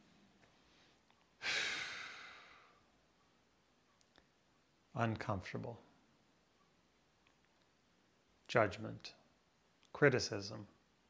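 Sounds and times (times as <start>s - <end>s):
man sighing: 1.4s - 2.8s.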